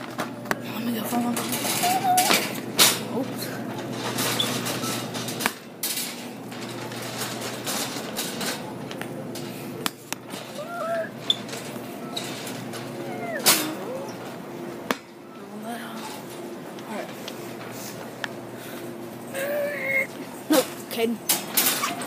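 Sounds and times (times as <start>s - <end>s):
shopping cart rattling: 0.3s - 14.8s, 19.2s - 22.0s.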